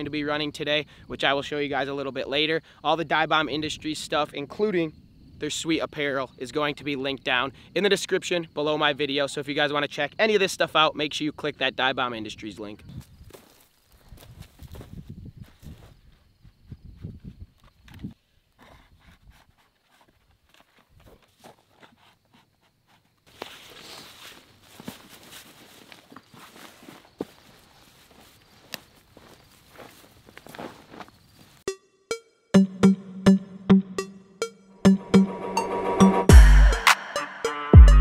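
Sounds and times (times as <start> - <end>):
footsteps in stubble field: 12.8 - 31.7
rustling plants with crackles: 13.0 - 16.2, 23.1 - 31.7.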